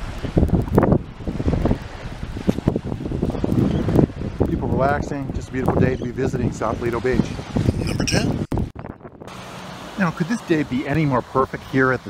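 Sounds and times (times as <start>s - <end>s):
small waves lapping: 0.0s - 5.6s, 9.3s - 12.0s
wind buffeting microphone: 0.0s - 9.4s.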